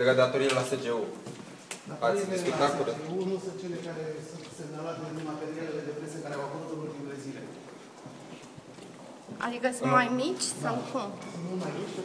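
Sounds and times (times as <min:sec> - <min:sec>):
footsteps on hard floor: 0:01.2 - 0:02.0, 0:03.1 - 0:12.0.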